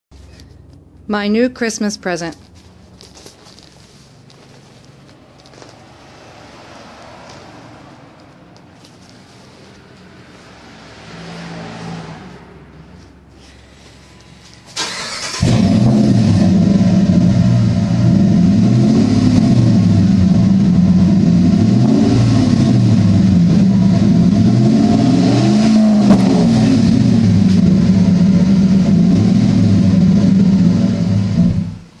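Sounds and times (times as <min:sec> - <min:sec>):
engine throttle blips: 0:04.2 - 0:32.0
pickup truck engine starting: 0:14.7 - 0:31.9.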